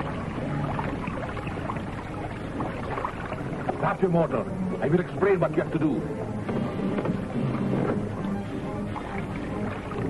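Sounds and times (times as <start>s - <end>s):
film soundtrack hiss: 0.0s - 10.0s
motorboat engine rumbling: 0.0s - 10.0s.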